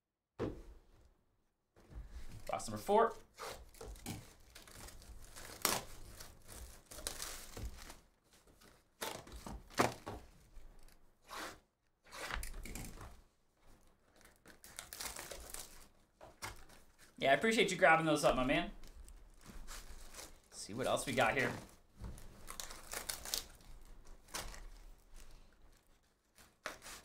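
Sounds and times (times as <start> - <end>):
shrink wrap ripping and rustling: 2.4 - 10.0, 14.0 - 27.0.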